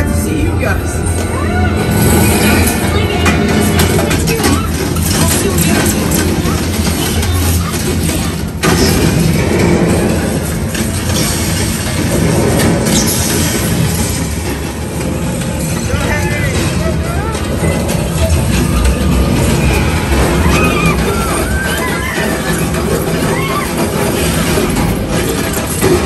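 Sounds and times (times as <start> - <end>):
sound effects and music: 0.0 - 26.0
steady low rumble: 0.0 - 26.0.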